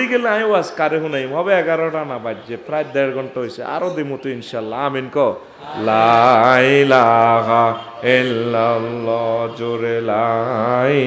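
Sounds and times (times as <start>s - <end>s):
man chanting sing-song: 5.8s - 11.0s.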